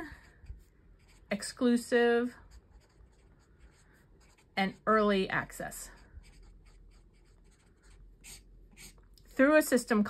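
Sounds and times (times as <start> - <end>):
pen scratching on paper: 0.1 - 1.7, 2.4 - 5.0, 5.6 - 9.0.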